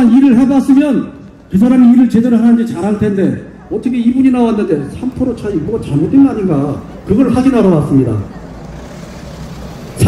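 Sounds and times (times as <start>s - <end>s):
low traffic rumble: 0.0s - 10.0s
car driving by: 4.8s - 10.0s.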